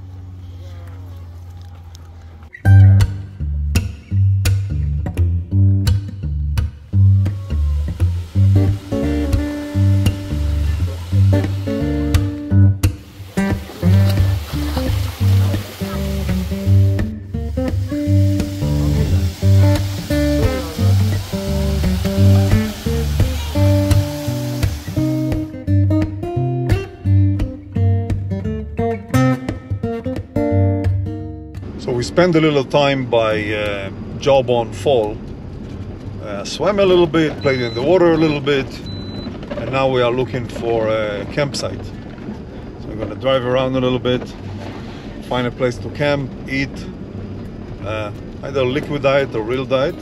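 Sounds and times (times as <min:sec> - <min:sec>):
acoustic guitar music: 0:02.5 - 0:31.8
steady bass beat: 0:02.7 - 0:28.7.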